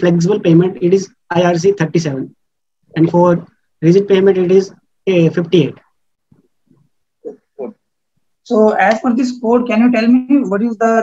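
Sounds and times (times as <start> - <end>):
man making wordless vocal sounds: 7.2 - 7.9.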